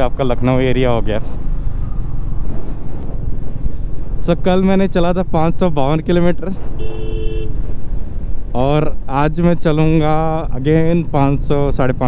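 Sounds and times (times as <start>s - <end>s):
road noise: 0.0s - 12.0s.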